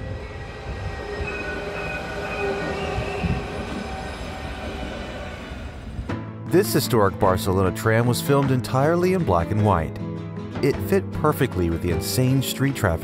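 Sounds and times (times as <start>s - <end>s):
tram wheels rushing on rail: 0.0s - 6.2s.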